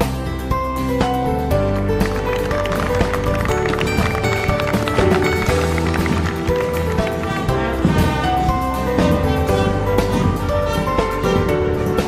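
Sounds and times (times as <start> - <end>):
band music with brass chords: 1.5 - 12.0.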